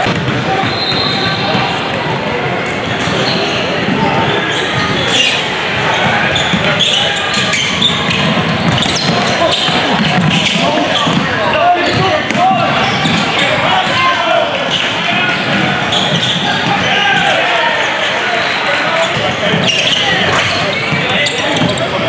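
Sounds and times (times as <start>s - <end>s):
crowd and players chattering: 0.0s - 22.0s.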